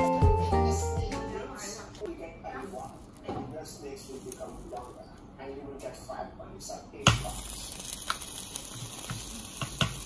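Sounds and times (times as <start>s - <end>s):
food sizzling in sandwich maker: 3.9s - 5.0s, 7.1s - 10.0s.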